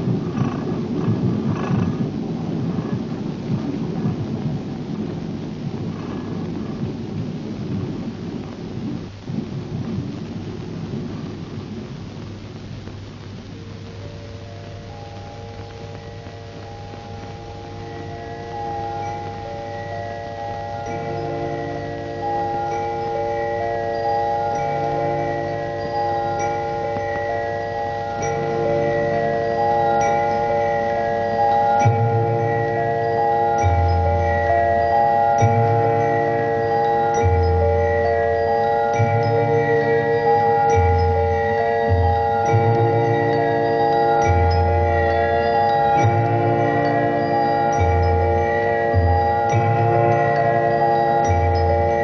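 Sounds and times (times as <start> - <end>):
sustained bell-like tones: 14.0 - 52.0.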